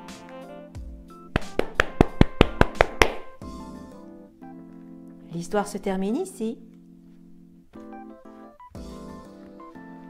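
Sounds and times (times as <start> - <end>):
soft background music: 0.0 - 10.0
gloved hands clapping: 1.4 - 3.4.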